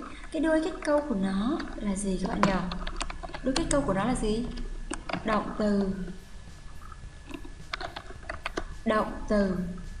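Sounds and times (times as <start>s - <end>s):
computer keyboard typing: 6.8s - 9.7s.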